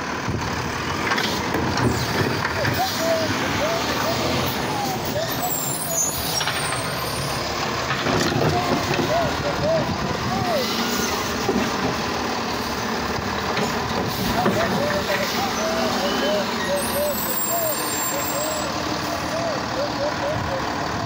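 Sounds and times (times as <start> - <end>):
garbage truck running: 0.0 - 21.0.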